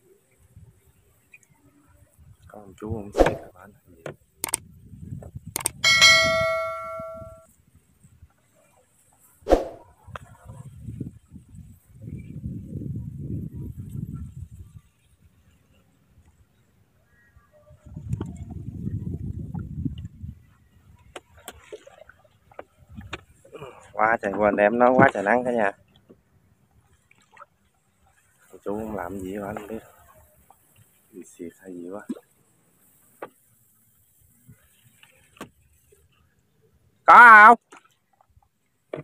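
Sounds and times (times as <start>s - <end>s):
sharp knock: 3.2s - 3.5s
metallic clang ringing: 5.8s - 7.4s.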